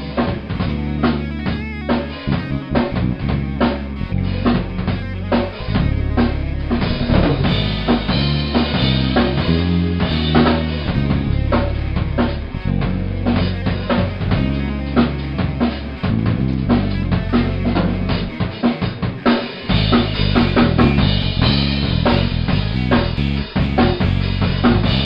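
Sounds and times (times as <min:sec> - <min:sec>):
low sustained bass notes: 0:00.0 - 0:18.5, 0:19.7 - 0:25.0
drum kit fast groove: 0:00.0 - 0:25.0.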